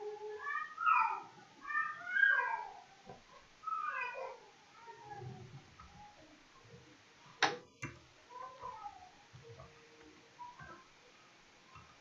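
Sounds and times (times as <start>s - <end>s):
faint cat meowing: 0.0s - 2.9s, 3.6s - 5.5s.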